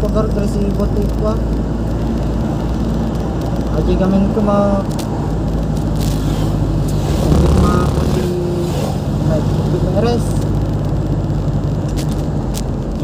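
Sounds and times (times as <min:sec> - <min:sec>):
vehicle engine and road noise: 0:00.0 - 0:13.0.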